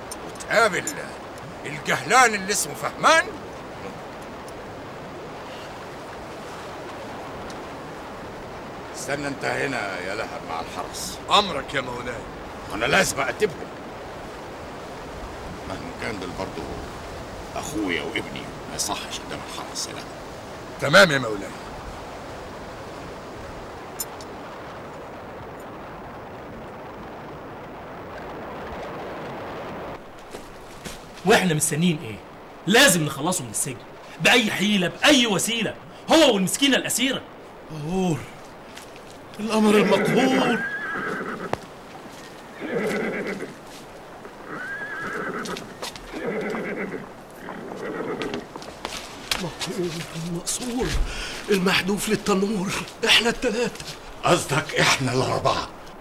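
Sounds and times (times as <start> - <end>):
steady rushing hiss: 0.0 - 56.0
horse whinnying: 39.7 - 41.6, 42.5 - 43.6, 44.4 - 48.6.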